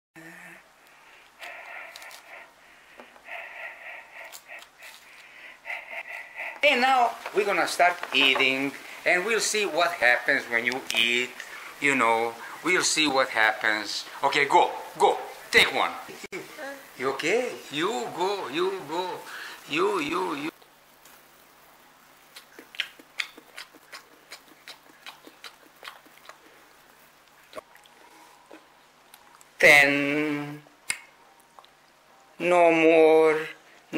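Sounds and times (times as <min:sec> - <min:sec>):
person breathing in puffs: 0:00.2 - 0:06.6, 0:19.3 - 0:19.6
toddler chewing mouth smacks: 0:22.3 - 0:26.5.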